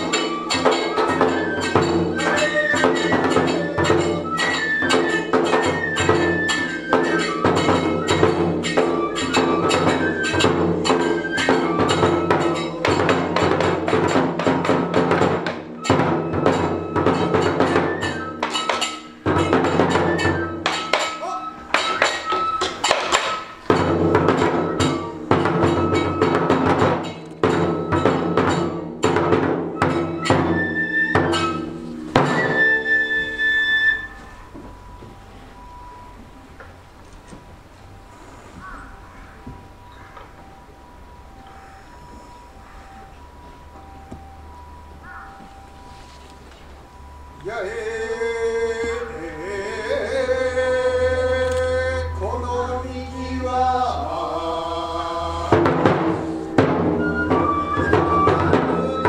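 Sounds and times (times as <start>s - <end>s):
ringing hand cymbals: 0.0s - 36.9s, 37.7s - 59.0s
flute melody: 0.0s - 59.0s
taiko drum strokes: 0.0s - 59.0s.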